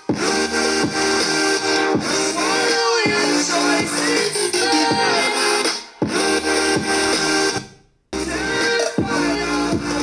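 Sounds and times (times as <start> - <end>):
pop music with guitar: 1.9 - 7.1, 8.2 - 10.0.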